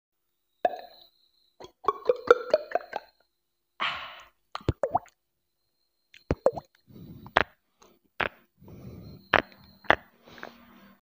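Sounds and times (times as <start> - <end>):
beatboxing mouth clicks: 7.2 - 7.5, 8.2 - 8.4.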